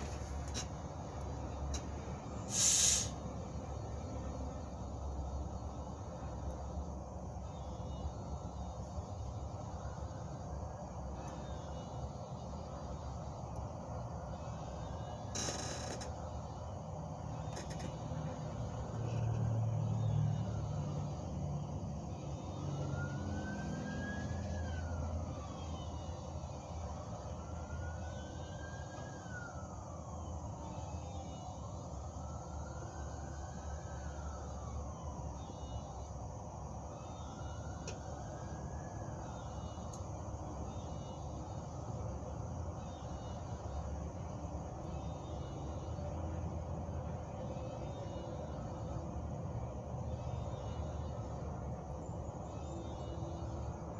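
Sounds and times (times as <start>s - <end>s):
distant siren wailing: 0.0s - 53.9s.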